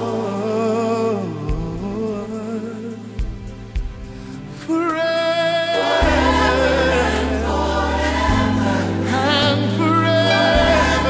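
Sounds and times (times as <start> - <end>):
gospel choir singing: 0.0 - 3.0, 4.6 - 11.0
band playing: 4.7 - 11.0
deep bass line: 6.0 - 11.0.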